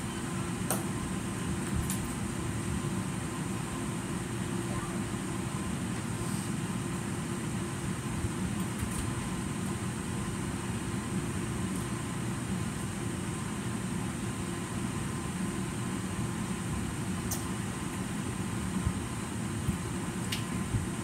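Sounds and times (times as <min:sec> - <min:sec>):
ventilation fan humming: 0:00.0 - 0:21.0.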